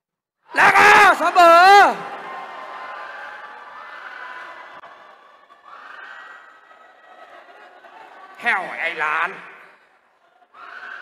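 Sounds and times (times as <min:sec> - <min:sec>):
crowd murmur indoors: 0:01.8 - 0:08.7, 0:09.4 - 0:11.0.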